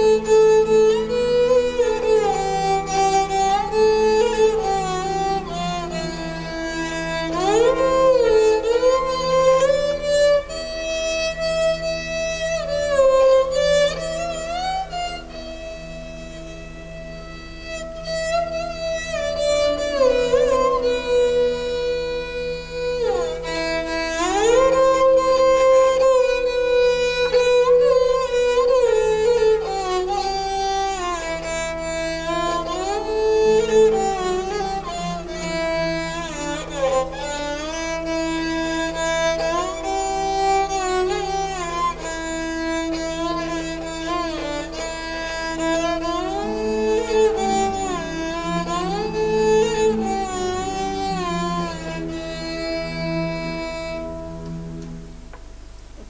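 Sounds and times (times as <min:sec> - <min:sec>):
bowed string instrument melody: 0:00.0 - 0:56.0
sustained keyboard notes: 0:00.0 - 0:56.0.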